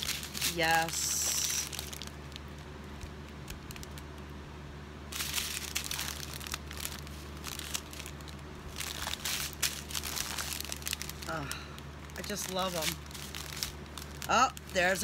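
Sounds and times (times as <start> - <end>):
plastic packets crinkling: 0.0 - 4.4, 5.1 - 15.0.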